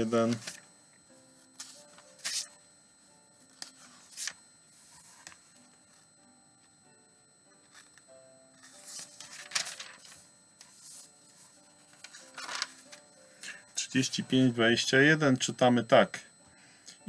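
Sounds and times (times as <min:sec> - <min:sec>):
paper pages rustling: 0:00.0 - 0:00.7, 0:01.5 - 0:02.6, 0:03.4 - 0:06.1, 0:08.6 - 0:13.1
soft background music: 0:00.0 - 0:17.0.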